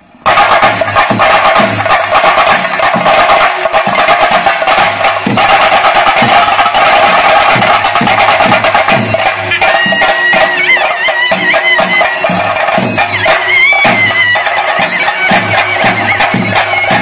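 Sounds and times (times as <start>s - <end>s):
drum ensemble playing: 0.0s - 17.0s.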